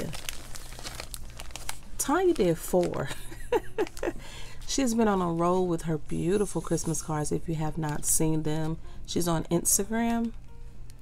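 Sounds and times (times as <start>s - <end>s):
plastic sleeves crinkling: 0.0s - 5.6s.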